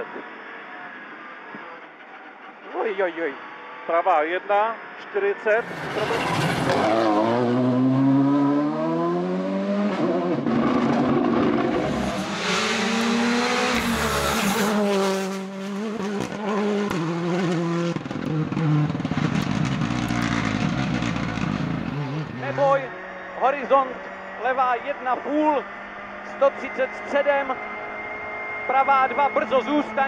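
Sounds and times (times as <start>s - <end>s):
car braking: 0.0s - 4.0s, 4.8s - 30.0s
rally car engines revving: 0.0s - 30.0s.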